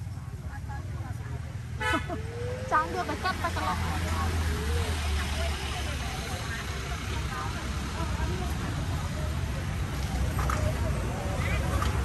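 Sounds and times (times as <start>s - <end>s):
people talking indistinctly: 0.0s - 12.0s.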